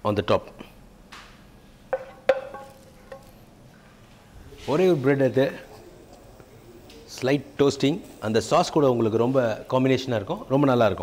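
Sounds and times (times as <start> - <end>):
utensil clinking on kitchenware: 1.9 - 3.4.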